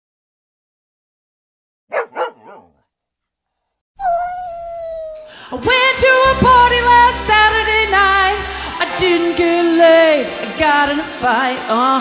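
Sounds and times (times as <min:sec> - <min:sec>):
dog barking: 0:01.9 - 0:02.9.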